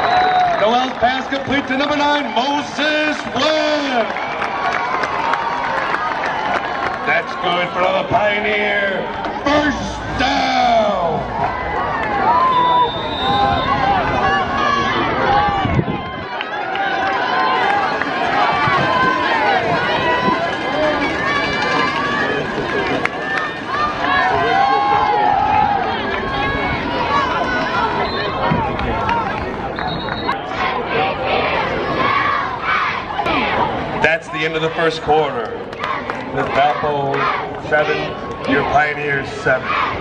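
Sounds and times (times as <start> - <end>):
crowd babble of voices: 0.0 - 40.0.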